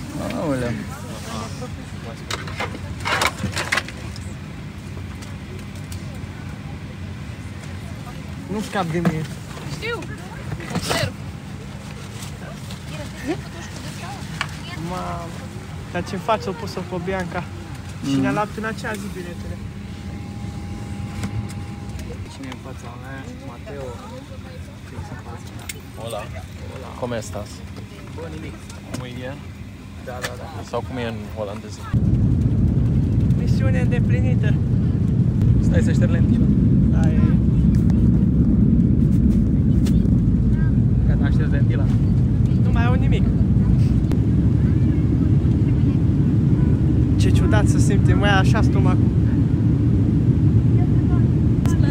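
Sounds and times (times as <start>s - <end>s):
airliner cabin ventilation hum: 0.0s - 51.9s
faint passenger voices: 0.0s - 51.9s.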